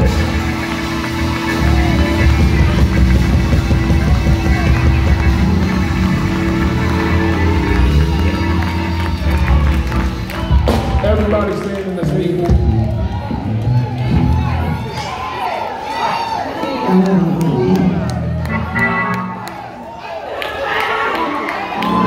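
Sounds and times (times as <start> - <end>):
live band playing: 0.0 - 15.3, 16.9 - 19.7.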